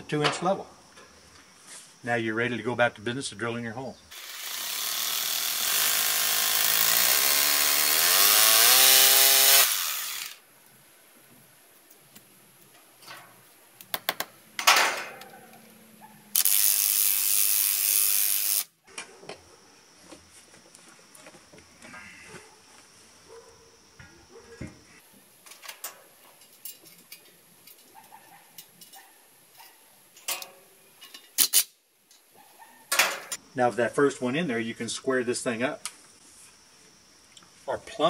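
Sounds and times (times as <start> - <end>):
hammer drill into concrete: 4.2 - 10.4
clicks and knocks of tools: 25.4 - 29.0, 29.6 - 32.2.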